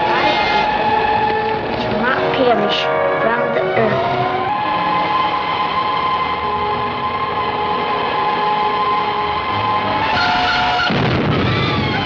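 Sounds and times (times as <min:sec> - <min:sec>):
rushing noise: 0:00.0 - 0:12.0.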